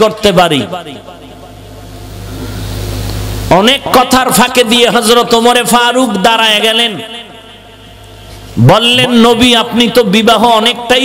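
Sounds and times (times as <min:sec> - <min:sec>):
steady low hum: 0:00.0 - 0:11.0
faint hiss: 0:01.8 - 0:03.7.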